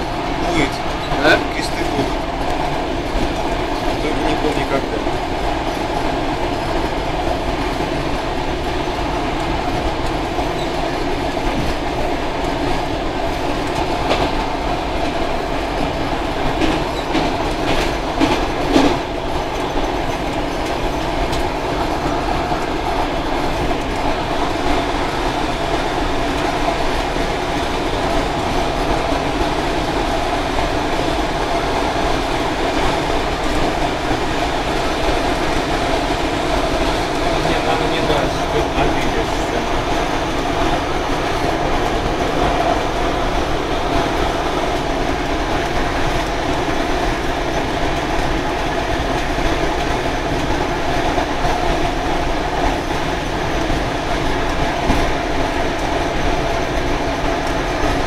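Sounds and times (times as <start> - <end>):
train wheels on rails: 0.0 - 58.0.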